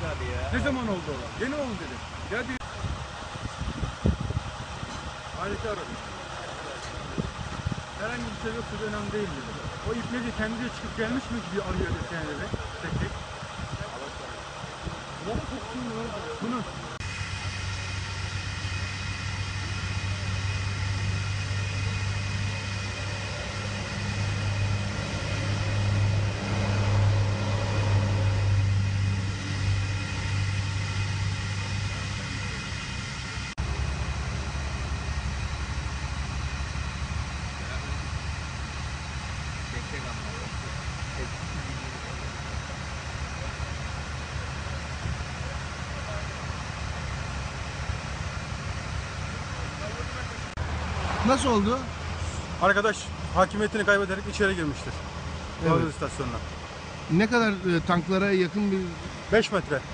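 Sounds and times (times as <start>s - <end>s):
engine idling: 0.0s - 59.9s.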